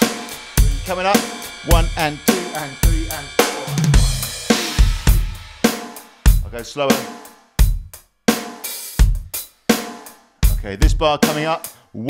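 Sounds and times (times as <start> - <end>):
electronic drum kit rock groove: 0.0 - 11.8.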